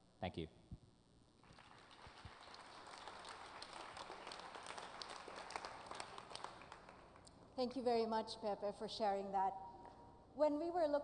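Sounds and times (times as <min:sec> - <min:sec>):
audience applauding: 0:01.4 - 0:07.3.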